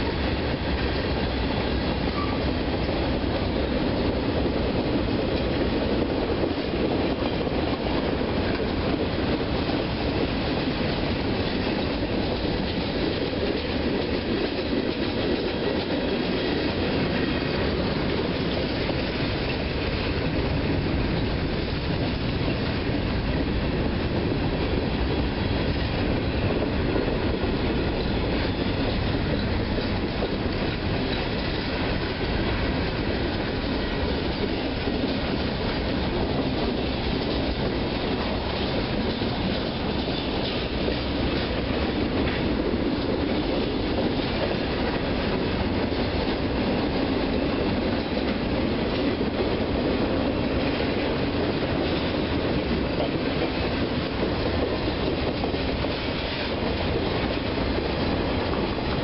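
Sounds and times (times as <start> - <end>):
freight train wheels rumbling: 0.0 - 59.0.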